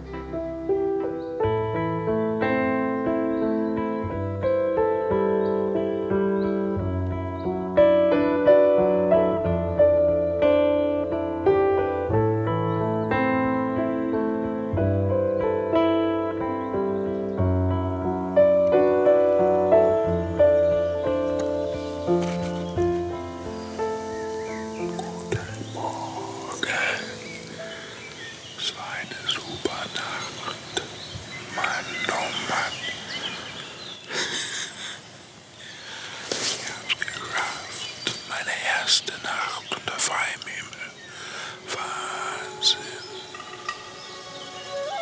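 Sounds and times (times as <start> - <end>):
soft piano music: 0.0 - 34.1, 35.8 - 45.0
whispery rustling: 20.8 - 34.6, 36.1 - 43.8.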